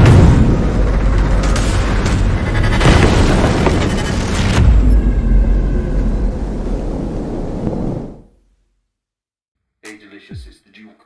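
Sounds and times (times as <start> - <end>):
bullet hit with deep rumble: 0.0 - 4.8.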